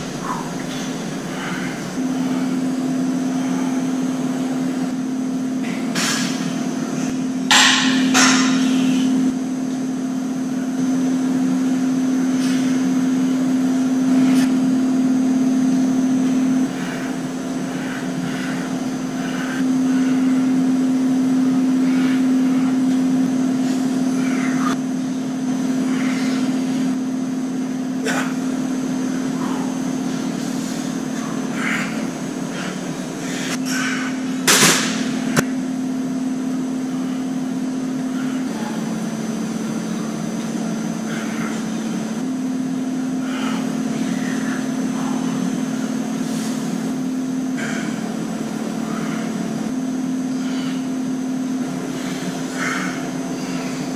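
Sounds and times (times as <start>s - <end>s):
low mechanical hum: 0.0s - 53.9s.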